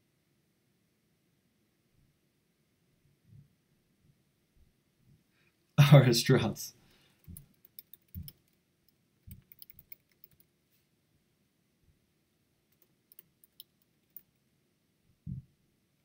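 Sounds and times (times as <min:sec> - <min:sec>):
keyboard and mouse clicks: 0:07.2 - 0:08.6, 0:09.2 - 0:10.5, 0:12.7 - 0:14.4.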